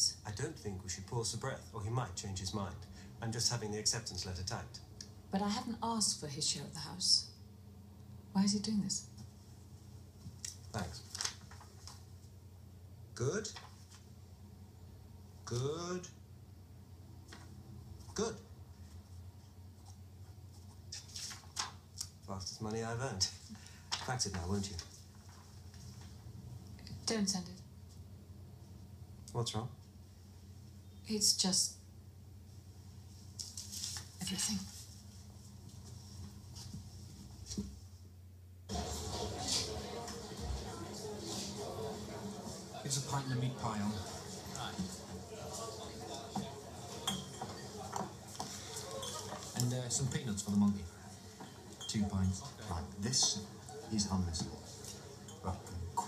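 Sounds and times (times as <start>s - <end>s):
background hubbub: 38.7s - 56.0s
glasses clinking: 44.0s - 49.5s, 51.3s - 53.9s, 54.8s - 55.7s.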